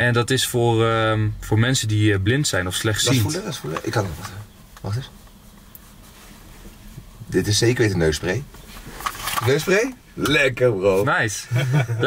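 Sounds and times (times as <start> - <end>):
car interior low rumble: 0.0 - 12.0.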